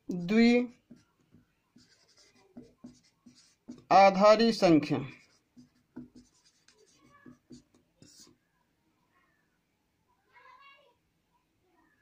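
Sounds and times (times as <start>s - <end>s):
marker scratching on whiteboard: 0.1s - 8.5s.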